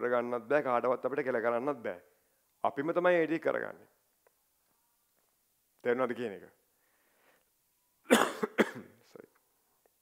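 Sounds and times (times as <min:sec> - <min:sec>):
man coughing: 0:08.1 - 0:09.0.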